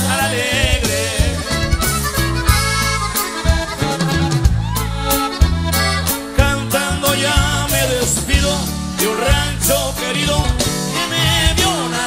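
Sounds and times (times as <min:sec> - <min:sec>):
band playing lead melody: 0:00.0 - 0:12.0
steady drum beats: 0:00.0 - 0:12.0
tuba bass line: 0:00.0 - 0:12.0.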